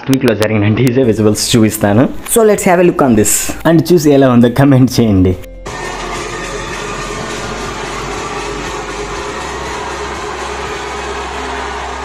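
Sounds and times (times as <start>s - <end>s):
low bass music: 1.1s - 12.0s
crowd noise: 5.7s - 12.0s.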